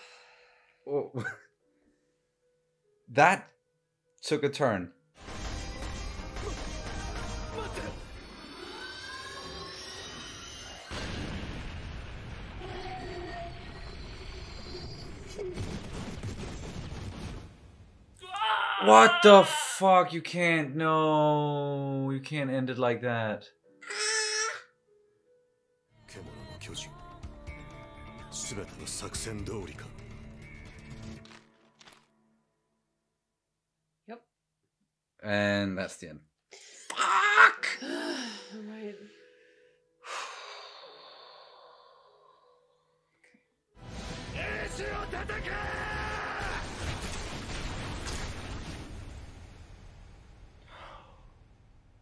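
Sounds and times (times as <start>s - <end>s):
woman screaming: 18.2s - 19.8s, 36.9s - 38.0s
person sighing: 36.6s - 38.7s, 50.7s - 51.3s
heavy sigh: 50.7s - 51.3s.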